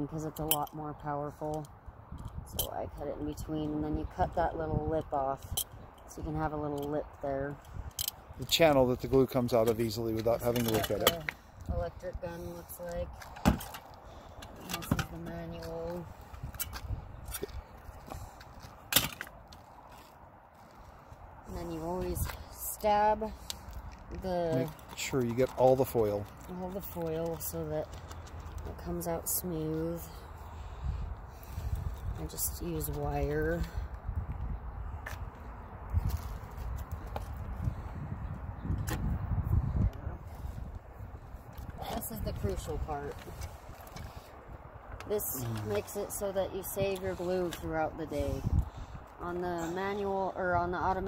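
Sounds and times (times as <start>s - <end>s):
wind rumble on microphone: 0.0s - 51.0s.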